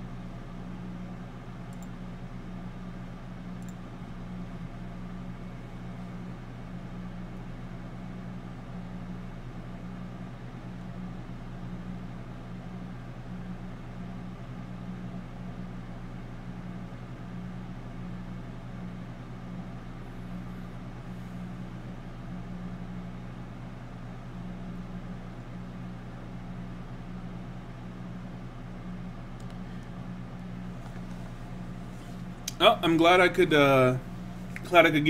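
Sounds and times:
steady low hum: 0.0s - 35.0s.

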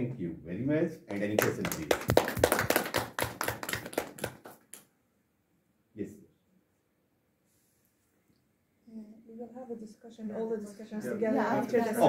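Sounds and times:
hand clapping: 1.1s - 4.9s.

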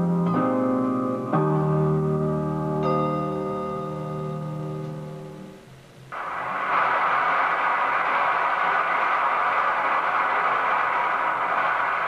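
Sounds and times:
loud steady hiss: 5.2s - 12.0s.

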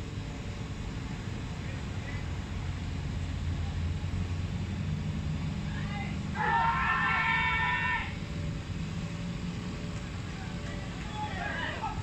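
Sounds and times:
man shouting high-pitched: 5.7s - 8.2s.

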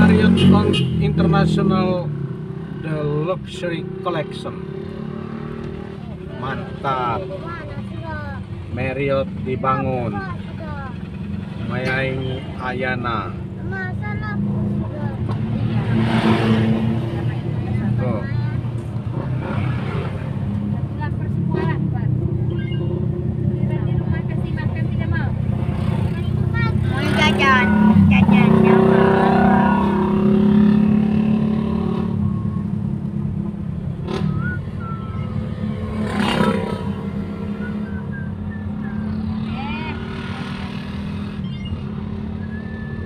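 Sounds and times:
car engine and tyre noise: 0.0s - 43.0s.

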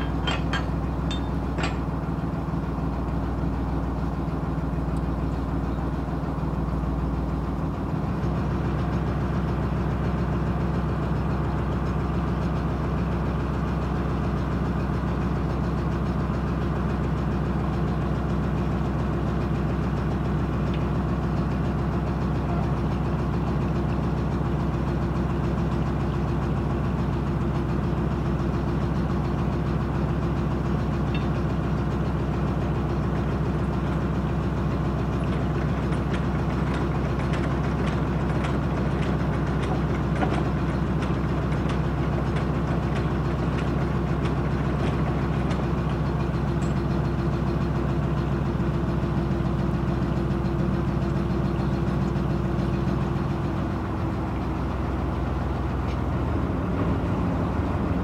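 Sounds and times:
low engine knock: 0.0s - 3.6s, 15.5s - 56.0s
diesel engine idling: 0.0s - 58.0s.

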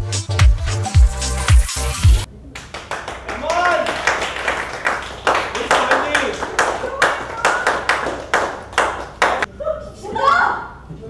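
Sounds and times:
sharp claps: 2.6s - 9.5s.

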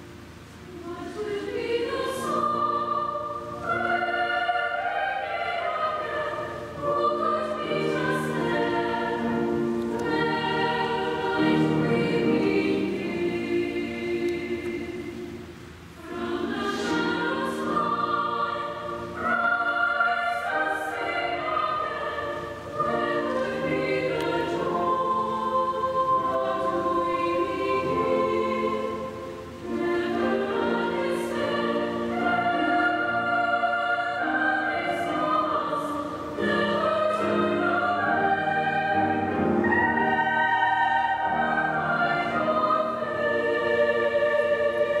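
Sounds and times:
mixed choir singing in harmony: 0.0s - 45.0s.

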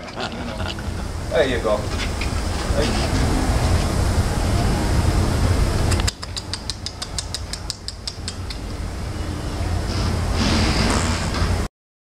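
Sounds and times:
kissing smacks on a cheek: 5.9s - 8.6s.

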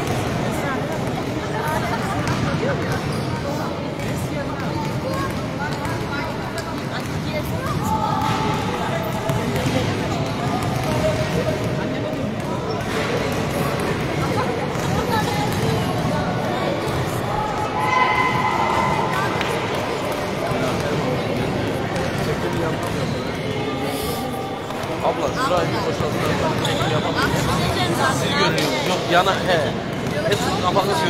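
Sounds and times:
basketballs bouncing on court: 0.0s - 3.2s, 4.0s - 23.4s, 29.2s - 30.6s
players' voices echoing: 0.0s - 31.0s.

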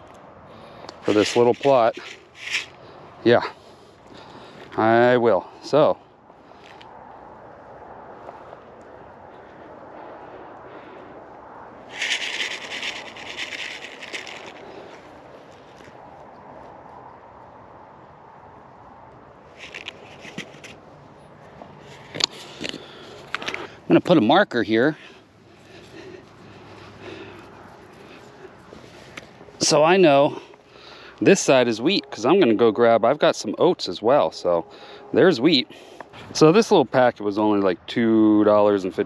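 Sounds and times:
paper seed packet rustling: 1.0s - 2.8s, 11.9s - 16.0s, 19.6s - 20.8s.

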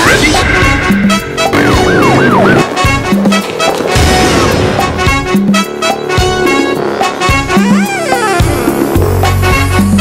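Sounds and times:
trailer music with pounding beat: 0.1s - 7.6s
siren wailing: 1.5s - 2.7s.

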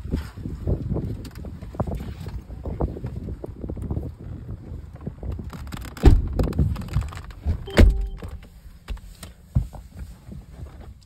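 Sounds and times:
wind rumbling on microphone: 0.0s - 8.2s.

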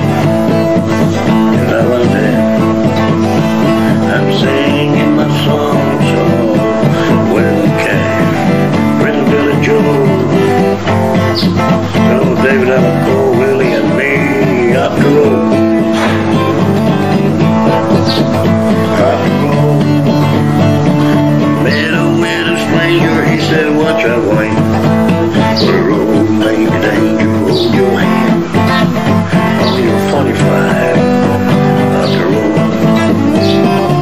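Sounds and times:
acoustic guitar playing: 0.0s - 34.0s.

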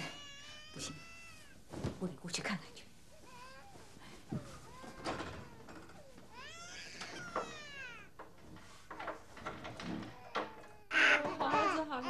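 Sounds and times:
infant crying: 4.7s - 8.1s, 10.1s - 12.0s.

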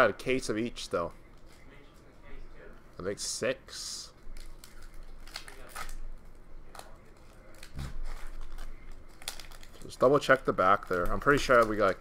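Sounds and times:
foil wrappers crinkling and tearing: 4.2s - 12.0s.

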